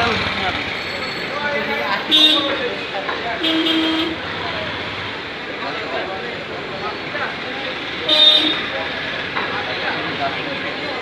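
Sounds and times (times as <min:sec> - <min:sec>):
traffic: 0:00.0 - 0:11.0
voices: 0:00.0 - 0:11.0
vehicle horn honk: 0:03.4 - 0:04.2.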